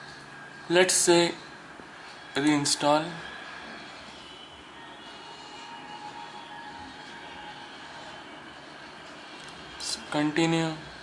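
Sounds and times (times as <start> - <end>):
background hum and hiss: 0.0 - 11.0
thin wavering tones: 0.0 - 11.0.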